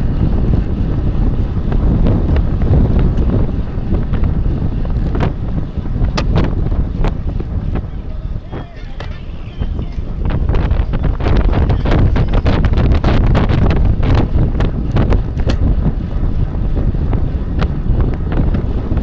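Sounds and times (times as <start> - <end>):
wind buffeting microphone: 0.0 - 19.0
bicycle knocking over road: 6.0 - 7.5.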